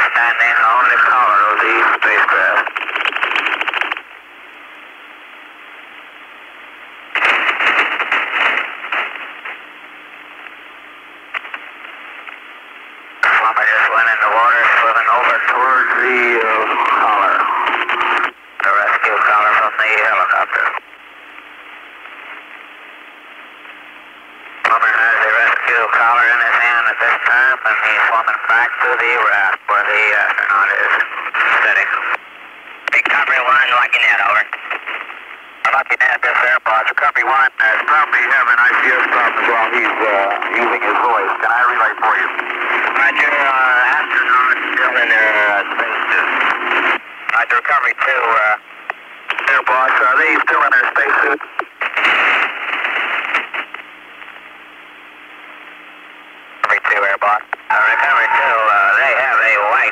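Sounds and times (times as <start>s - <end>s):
tinny radio speech: 0.0s - 2.7s, 13.2s - 17.8s, 18.6s - 20.8s, 24.6s - 32.2s, 32.9s - 34.6s, 35.6s - 48.6s, 49.3s - 51.6s, 56.6s - 59.9s
static hiss: 0.0s - 59.9s.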